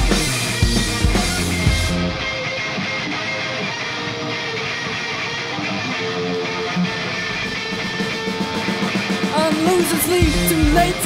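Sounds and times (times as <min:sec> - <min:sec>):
electric guitars strumming: 0:00.0 - 0:11.0.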